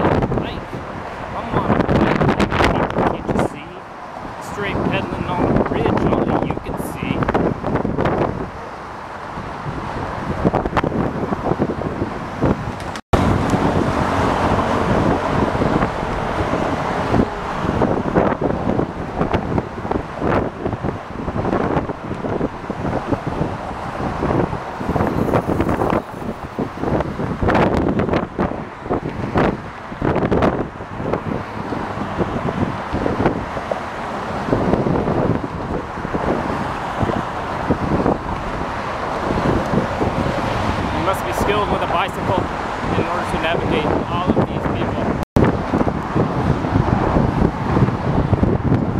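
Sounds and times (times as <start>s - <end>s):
cars passing: 0.0s - 48.9s
wind buffeting microphone: 0.0s - 48.9s.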